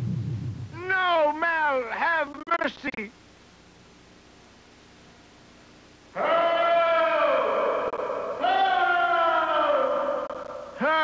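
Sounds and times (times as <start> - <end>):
man wailing in alarm: 6.2 - 11.0.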